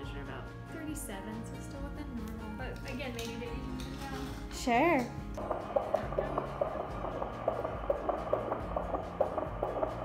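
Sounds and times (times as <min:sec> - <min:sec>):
fetal heartbeat whooshing pulses: 0:05.4 - 0:10.0.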